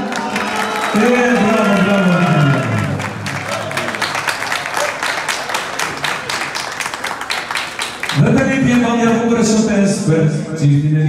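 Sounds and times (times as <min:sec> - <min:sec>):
crowd applauding: 0:00.0 - 0:09.4.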